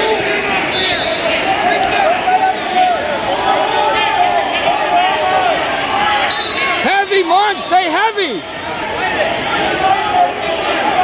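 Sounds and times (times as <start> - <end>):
crowd babble: 0.0 - 11.0
spectator shouting encouragement: 6.2 - 11.0.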